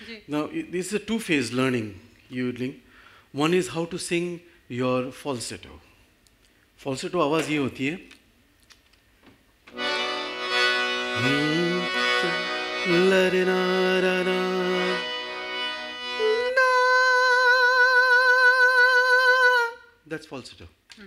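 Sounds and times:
man singing chest voice: 0:11.1 - 0:15.4, 0:16.0 - 0:19.9
man singing falsetto with vibrato: 0:15.9 - 0:20.0.

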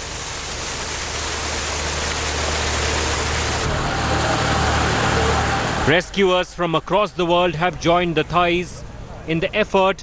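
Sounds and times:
water gushing from a hose: 0:00.0 - 0:03.7
low engine hum: 0:00.0 - 0:06.4.

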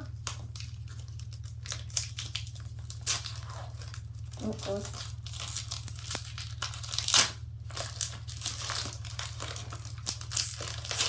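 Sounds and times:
foil wrapper crinkling and tearing: 0:00.0 - 0:11.0.

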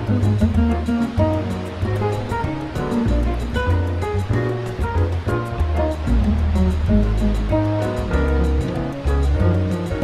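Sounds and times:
instrumental jazz: 0:00.0 - 0:10.0
light percussion tick: 0:00.0 - 0:10.0.

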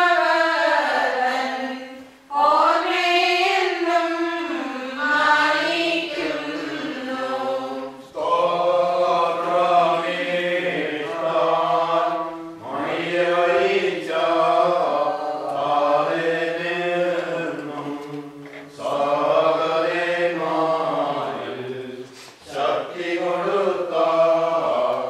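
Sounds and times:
voices chanting a hymn: 0:00.0 - 0:25.0
singers breathing: 0:22.0 - 0:22.5.

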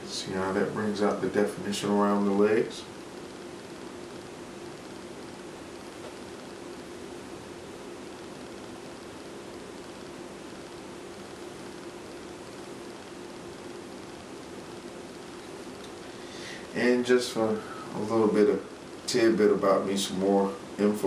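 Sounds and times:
faint low hum: 0:00.0 - 0:21.0
steady background hiss: 0:00.0 - 0:21.0.

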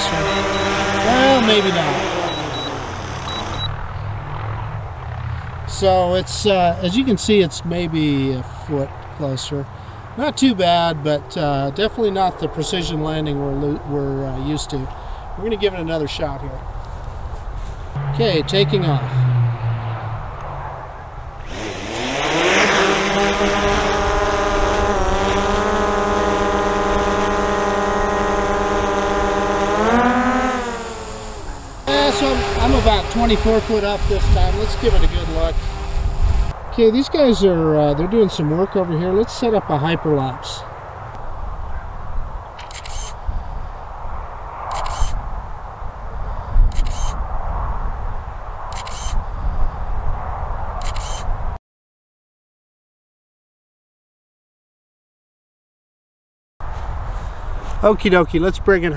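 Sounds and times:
drone propellers buzzing: 0:00.0 - 0:04.8, 0:17.9 - 0:19.3, 0:19.9 - 0:36.6
wind rumble on microphone: 0:31.9 - 0:36.7, 0:43.2 - 0:51.6
camera shutter click: 0:42.6 - 0:43.2, 0:44.7 - 0:45.2, 0:46.7 - 0:47.2, 0:48.7 - 0:49.2, 0:50.8 - 0:51.2.

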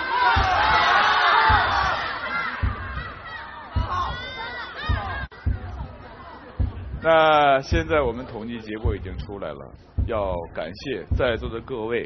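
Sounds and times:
audience shouting and cheering: 0:00.0 - 0:06.7
backing music with low beat: 0:00.4 - 0:12.0.

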